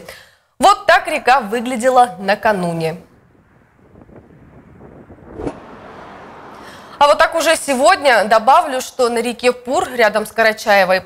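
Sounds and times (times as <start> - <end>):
river rushing: 5.3 - 7.5.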